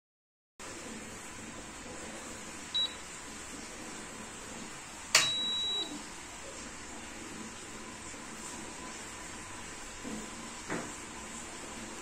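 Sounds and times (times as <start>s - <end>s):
high steady beep: 2.8s - 3.0s, 5.2s - 6.0s
meter switch click: 5.2s - 5.6s.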